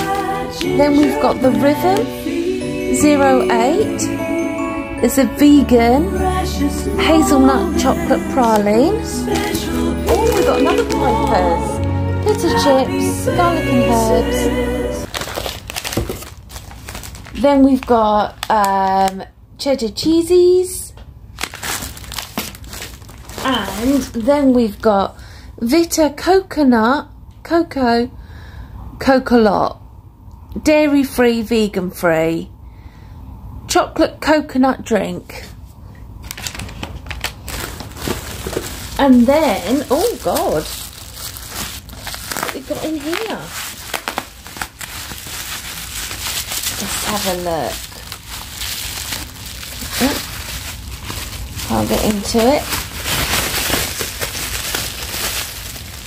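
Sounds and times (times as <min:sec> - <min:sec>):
plastic packaging crinkling: 0:00.0 - 0:02.1, 0:07.2 - 0:12.8, 0:15.0 - 0:19.2, 0:21.3 - 0:24.8, 0:36.2 - 0:56.0.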